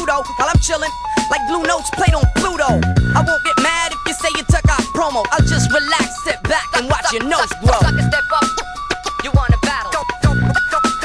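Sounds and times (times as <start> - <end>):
rapped vocals: 0.0 - 11.0
heavy bass drum hits: 2.1 - 3.3.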